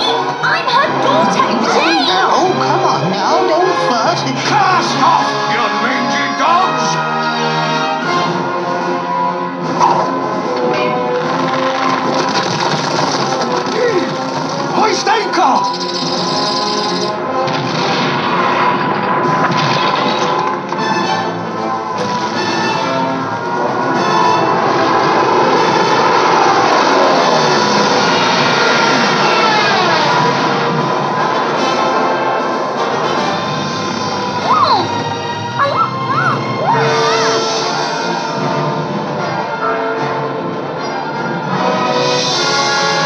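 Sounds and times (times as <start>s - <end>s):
trailer music through tv speaker: 0.0s - 43.0s.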